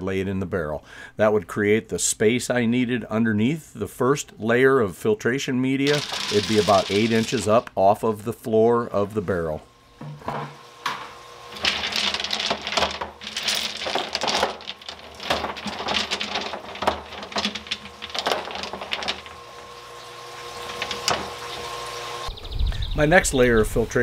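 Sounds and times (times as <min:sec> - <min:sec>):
rocks clattering in plastic barrel: 0:05.8 - 0:07.6, 0:11.5 - 0:21.8.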